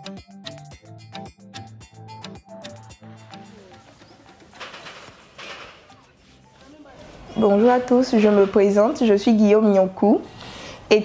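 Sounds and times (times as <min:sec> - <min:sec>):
quiet street ambience: 0:03.2 - 0:11.0.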